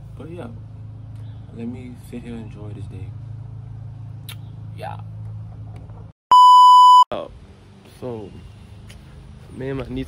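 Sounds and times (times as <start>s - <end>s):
bleep tone: 6.3s - 7.1s.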